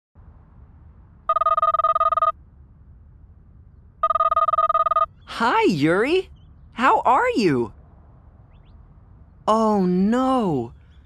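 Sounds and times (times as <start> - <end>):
faint low hum: 0.2 - 11.0
smartphone ringing: 1.3 - 2.4, 4.0 - 5.1.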